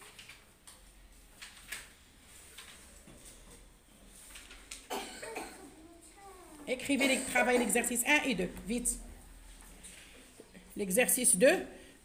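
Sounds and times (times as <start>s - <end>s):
person coughing: 4.9s - 5.8s, 7.0s - 7.9s.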